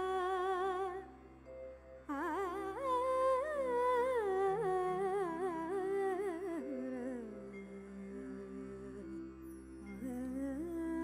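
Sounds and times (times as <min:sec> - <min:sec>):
woman singing wordless melody: 0:00.0 - 0:11.0.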